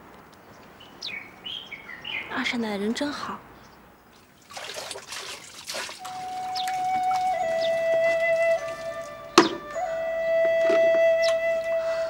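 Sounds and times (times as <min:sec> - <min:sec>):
water splashing in a bowl: 0:04.1 - 0:09.6
soft background music: 0:06.1 - 0:12.0.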